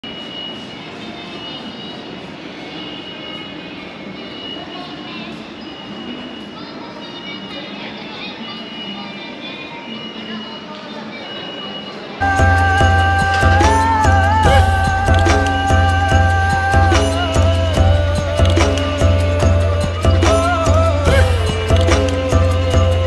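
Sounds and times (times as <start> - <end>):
hubbub of distant voices: 0.0 - 23.0
high intermittent tone: 12.2 - 23.0.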